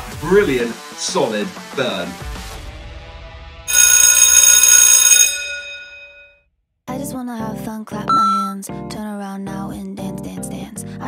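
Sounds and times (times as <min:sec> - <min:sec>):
bell ringing: 0:03.7 - 0:06.3, 0:08.1 - 0:08.6.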